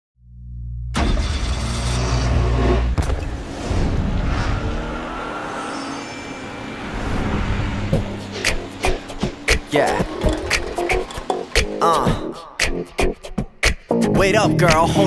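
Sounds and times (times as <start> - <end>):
deep rumble: 0.3 - 5.3
sharp hit: 1.0 - 12.8
song beat: 7.9 - 15.0.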